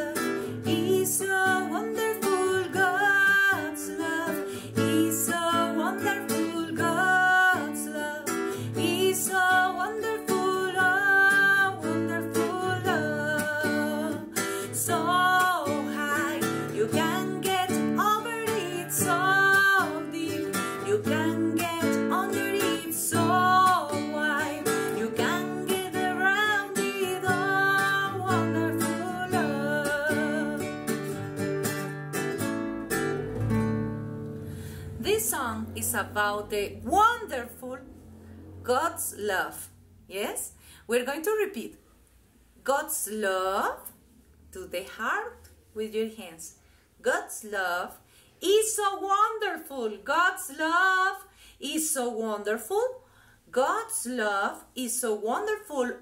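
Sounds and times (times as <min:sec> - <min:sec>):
woman singing: 0:00.0 - 0:31.1, 0:34.9 - 0:37.8, 0:48.4 - 0:52.9
classical guitar strumming: 0:00.0 - 0:37.4.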